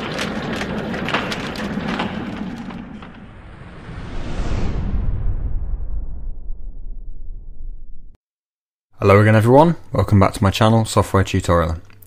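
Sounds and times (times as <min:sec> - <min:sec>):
rumbling whoosh with clicks: 0:00.0 - 0:08.2
deep bass swell: 0:03.2 - 0:08.2.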